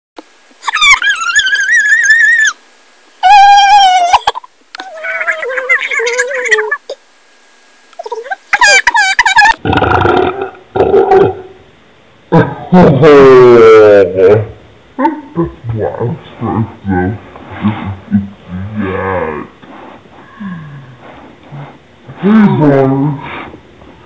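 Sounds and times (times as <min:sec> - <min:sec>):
pitched-up voice calls: 0:00.6 - 0:02.6, 0:03.2 - 0:07.0, 0:08.0 - 0:11.6, 0:13.3 - 0:19.6.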